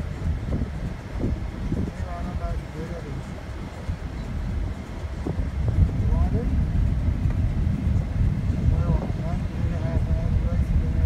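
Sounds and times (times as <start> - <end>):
road and engine rumble in vehicle: 0.0 - 11.0.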